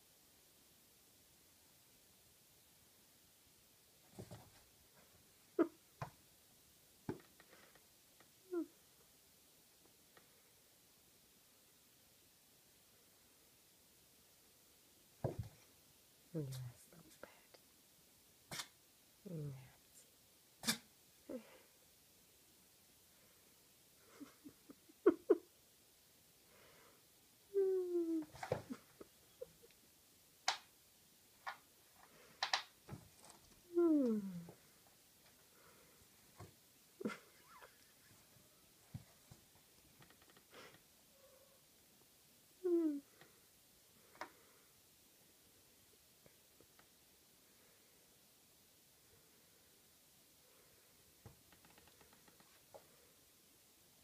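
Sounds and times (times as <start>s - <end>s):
faint clicks: 51.4s - 52.9s.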